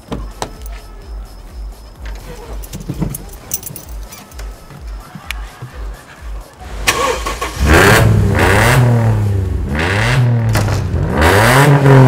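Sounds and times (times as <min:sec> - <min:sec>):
music with bass beat: 0:00.0 - 0:06.9
keys jangling: 0:00.5 - 0:00.9, 0:01.8 - 0:05.0
person climbing into seat: 0:02.0 - 0:06.0.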